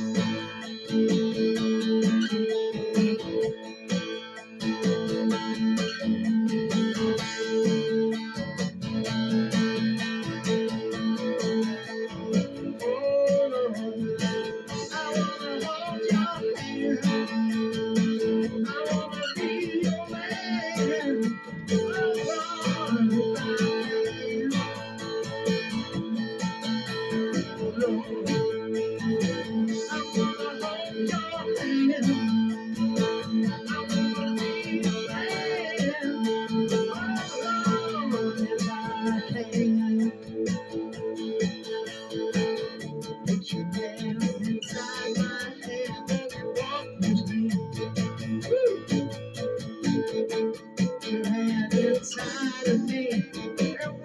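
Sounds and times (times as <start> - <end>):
acoustic guitar strumming chords: 0.0 - 54.0.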